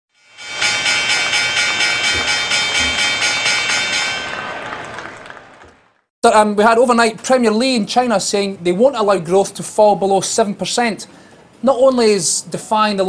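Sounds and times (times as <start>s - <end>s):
synthesized chord with pulsing shimmer: 0.2s - 4.4s.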